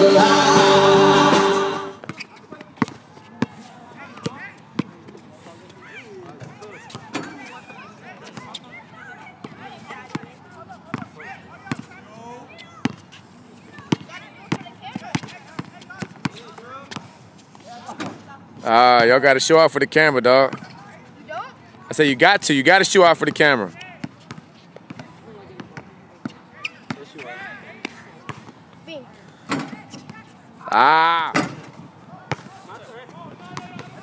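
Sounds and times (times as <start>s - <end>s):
basketball bouncing on hard court: 10.9s - 11.1s, 13.8s - 17.1s, 24.0s - 27.1s, 33.5s - 34.0s.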